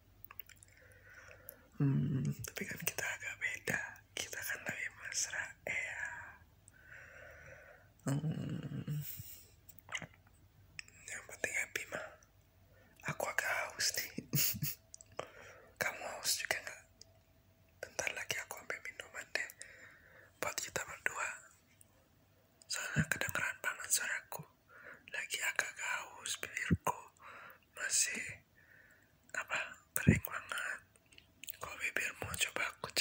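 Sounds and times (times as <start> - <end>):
man whispering: 1.6 - 6.4, 8.0 - 10.2, 10.8 - 12.3, 13.0 - 16.9, 17.8 - 19.7, 20.4 - 21.6, 22.6 - 24.5, 25.1 - 28.4, 29.3 - 33.0.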